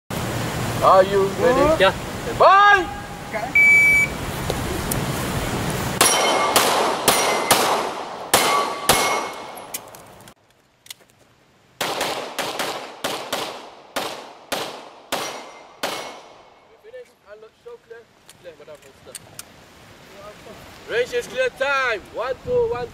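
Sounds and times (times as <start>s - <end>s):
pistol shots: 6.0s - 9.6s, 11.8s - 16.5s.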